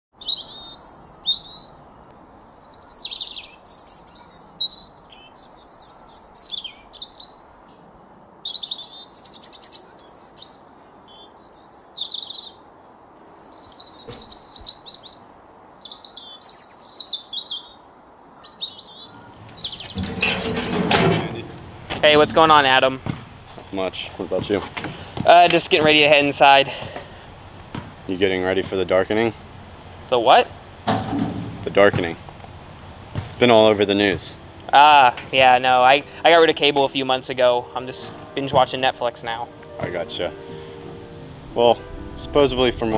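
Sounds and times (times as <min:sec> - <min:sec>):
songbirds chirping: 0:00.1 - 0:42.9
faint outdoor hiss: 0:00.2 - 0:42.9.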